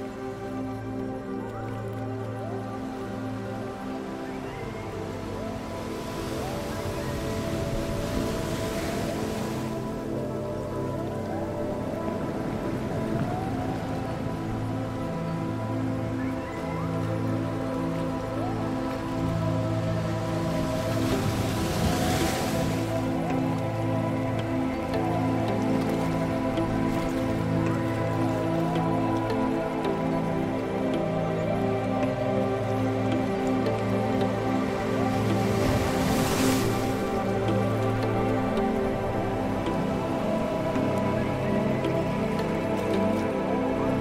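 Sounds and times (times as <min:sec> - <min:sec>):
ambient meditation music: 0:00.0 - 0:44.0
surf-like wash of noise: 0:00.0 - 0:44.0.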